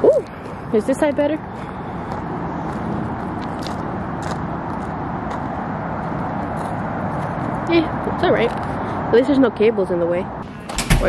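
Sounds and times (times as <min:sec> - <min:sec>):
steady outdoor rushing noise: 0:00.0 - 0:11.0.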